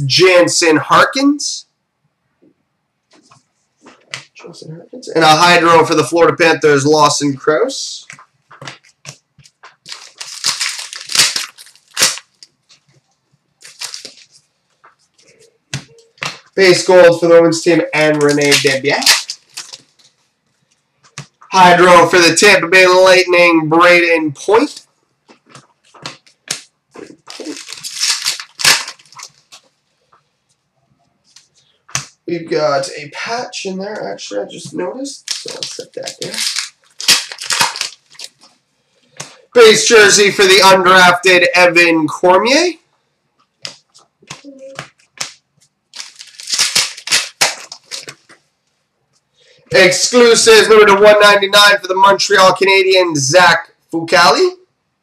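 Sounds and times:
cards rustling and clicking: 8.0 - 13.0, 13.6 - 16.5, 18.1 - 21.5, 24.7 - 29.7, 35.2 - 39.4, 43.4 - 48.4.

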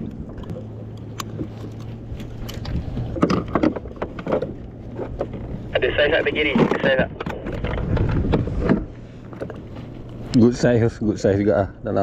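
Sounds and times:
steady low hum: 0.0 - 12.0
wind: 0.0 - 12.0.

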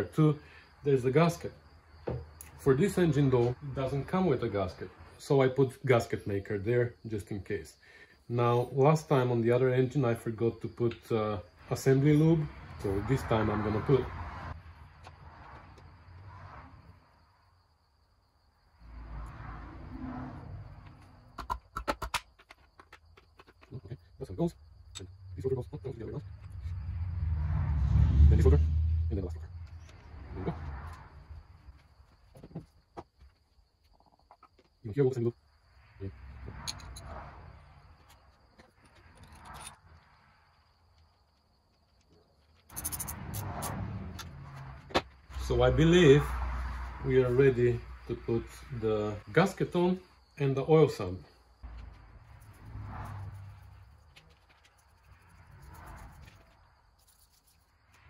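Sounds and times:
sharp metal clicks: 42.7 - 44.3.

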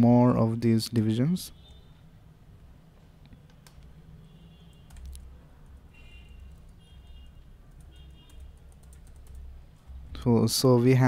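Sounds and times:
computer keyboard typing: 4.7 - 6.8, 7.6 - 10.0.

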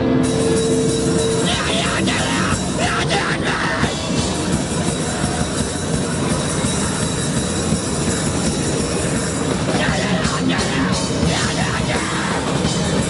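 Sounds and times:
punk band playing live: 0.0 - 13.0.

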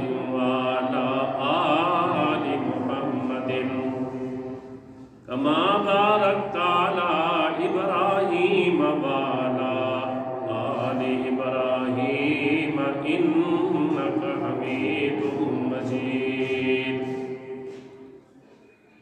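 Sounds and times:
man chanting into a microphone: 5.2 - 17.4.

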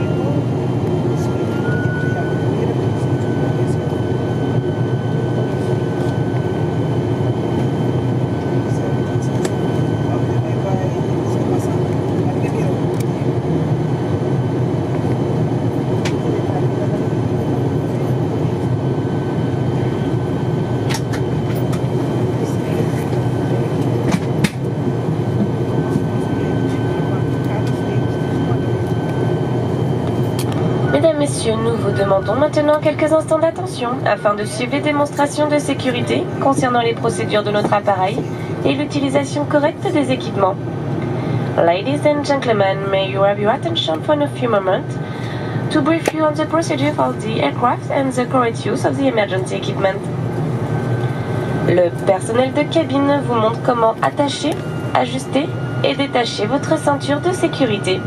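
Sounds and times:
turboprop engine cabin drone: 0.0 - 58.0.

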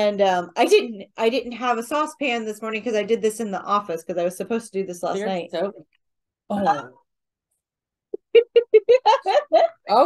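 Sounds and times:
woman laughing: 8.2 - 10.0.

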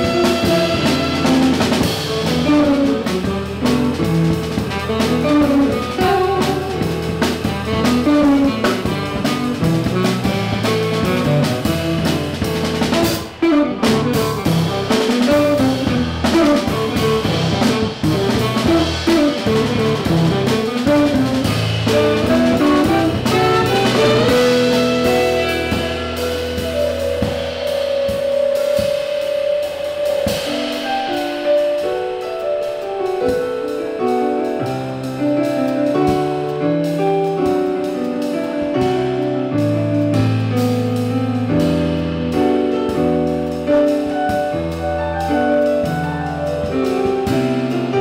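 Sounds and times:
saxophone: 0.0 - 29.0
upright double bass: 0.0 - 30.8, 33.1 - 48.0
drum kit: 0.0 - 48.0.

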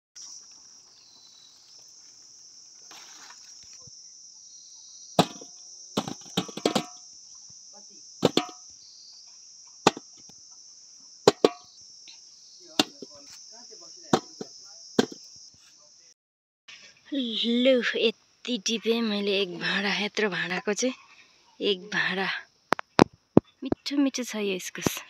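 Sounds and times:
crickets chirping: 0.2 - 16.2, 16.8 - 25.0
sharp knocks: 5.2 - 7.0, 8.2 - 8.6, 9.9 - 10.2, 11.3 - 11.7, 12.8 - 13.2, 14.2 - 15.2.

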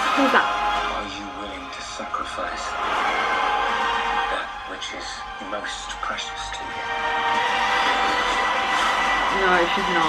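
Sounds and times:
sustained music notes: 0.3 - 10.0.

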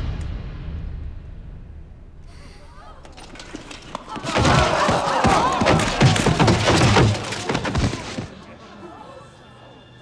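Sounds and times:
film score: 0.0 - 10.0
hits and heavy thuds: 3.4 - 8.4
shouting voices: 4.0 - 9.5.

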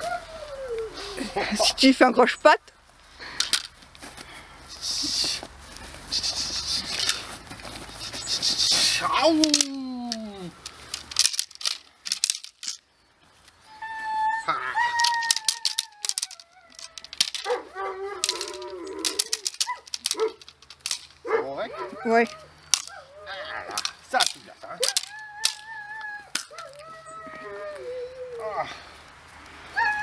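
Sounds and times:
person exclaiming: 8.9 - 10.6, 14.2 - 17.2, 23.2 - 28.8
long high-pitched falling cry: 13.7 - 17.1.

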